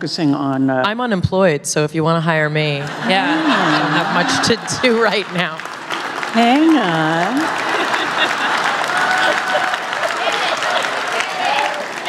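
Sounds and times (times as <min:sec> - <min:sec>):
audience applauding: 0:03.0 - 0:12.0.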